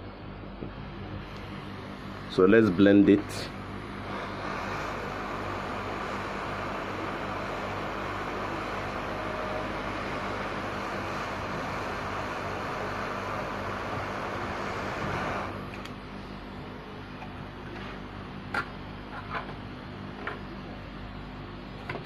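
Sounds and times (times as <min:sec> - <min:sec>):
hot-air nozzle hissing: 0:03.1 - 0:15.9.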